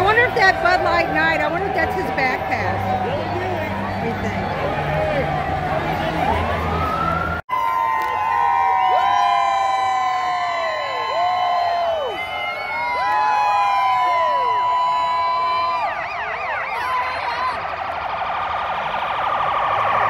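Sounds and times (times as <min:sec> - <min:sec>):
police sirens wailing: 0:00.0 - 0:20.0.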